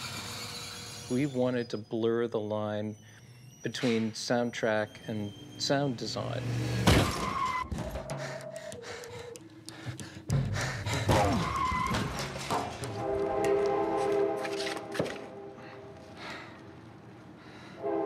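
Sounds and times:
sustained held chord: 13.0 - 16.2.

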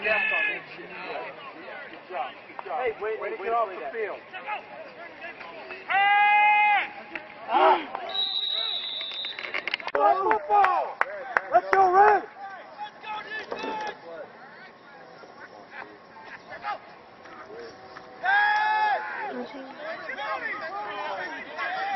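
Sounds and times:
players and coaches yelling: 0.0 - 8.8, 9.9 - 21.9
referee's whistle blast: 8.0 - 9.6.

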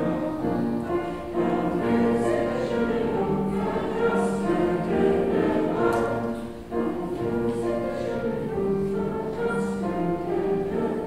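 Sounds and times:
mixed choir singing: 0.0 - 11.0.

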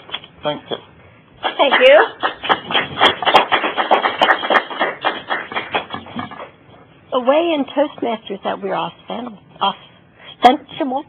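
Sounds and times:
small audience applauding: 1.4 - 6.1.

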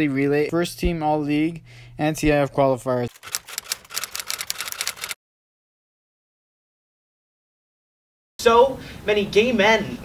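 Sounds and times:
rapid sharp clicks: 3.1 - 5.2.

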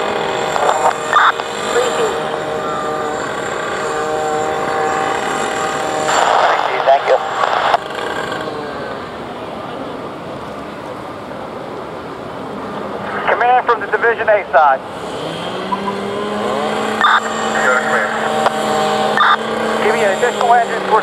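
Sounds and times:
motor humming: 0.0 - 9.7, 14.9 - 21.0
burst of voices: 5.4 - 7.8.

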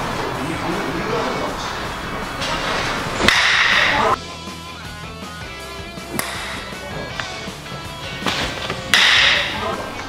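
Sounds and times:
background music: 0.0 - 10.0
bat hitting baseball: 3.2 - 4.2, 6.1 - 7.6, 8.2 - 9.9.

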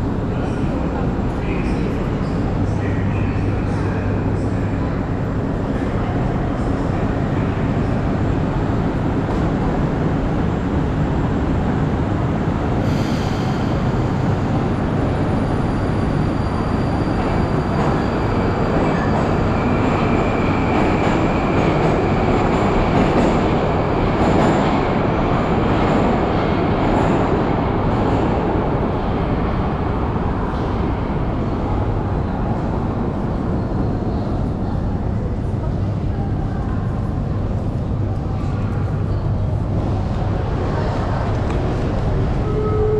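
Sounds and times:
subway train rumbling: 0.0 - 42.9.

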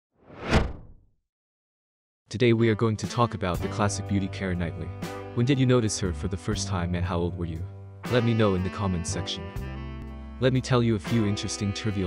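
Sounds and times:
whoosh sound effect: 0.2 - 1.0.

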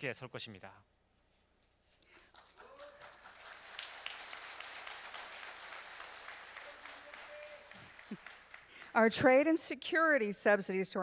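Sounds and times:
audience applauding: 2.1 - 9.1.

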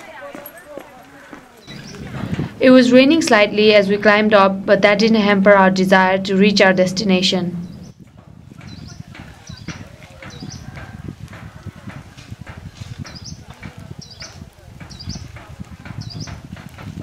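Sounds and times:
footsteps on stony muddy trail: 0.0 - 2.5, 8.4 - 17.0
faint voices: 0.0 - 17.0
bird chirping: 1.6 - 2.2, 6.7 - 10.7, 12.8 - 16.5.

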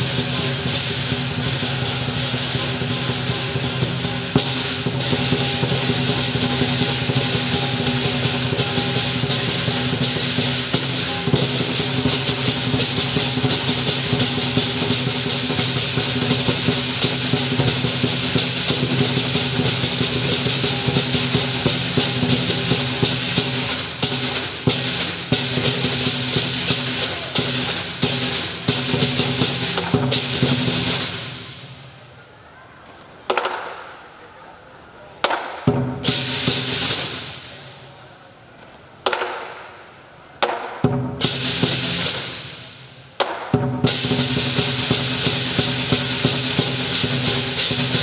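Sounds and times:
cymbals crashing: 0.0 - 32.1, 35.4 - 38.0, 39.2 - 48.0
lion dance drum: 0.0 - 32.1, 35.2 - 37.9, 39.0 - 48.0.

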